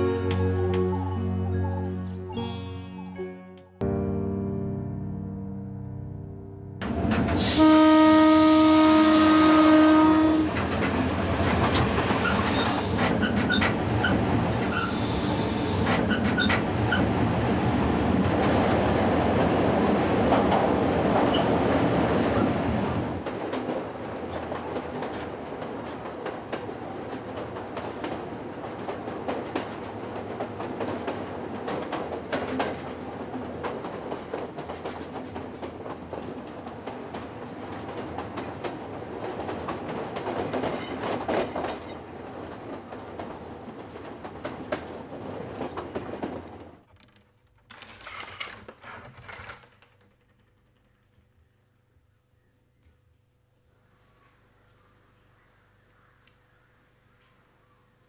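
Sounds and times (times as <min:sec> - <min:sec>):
moving train rumble and clatter: 0:06.8 - 0:47.1
train horn blast: 0:07.3 - 0:10.7.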